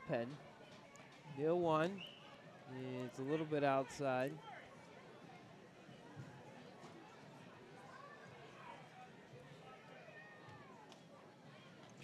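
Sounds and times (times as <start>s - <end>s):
faint ballpark background: 0.0s - 12.0s.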